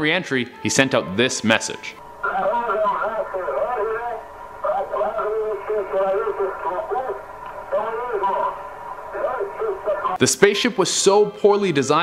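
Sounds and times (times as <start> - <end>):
man speaking over radio: 1.7 - 10.2
faint steady tone: 2.0 - 10.2.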